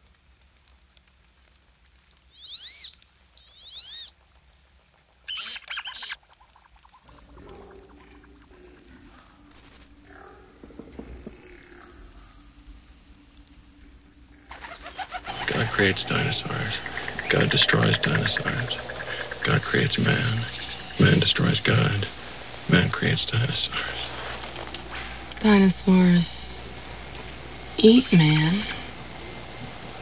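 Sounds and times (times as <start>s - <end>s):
bird-like chirping calls: 2.3s - 4.1s, 5.3s - 6.2s, 14.4s - 21.6s
high-pitched hiss: 9.2s - 24.3s, 27.7s - 30.0s.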